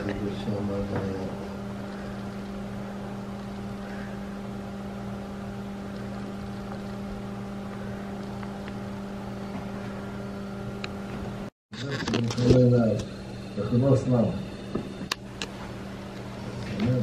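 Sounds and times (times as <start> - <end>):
desk fan motor whir: 0.0 - 17.0.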